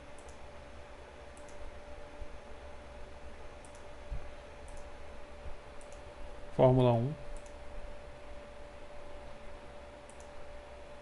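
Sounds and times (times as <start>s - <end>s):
faint electrical hum: 0.0s - 11.0s
computer mouse clicking: 0.1s - 0.4s, 1.3s - 1.6s, 3.6s - 3.9s, 4.6s - 4.9s, 5.8s - 6.1s, 7.3s - 7.6s, 10.0s - 10.4s.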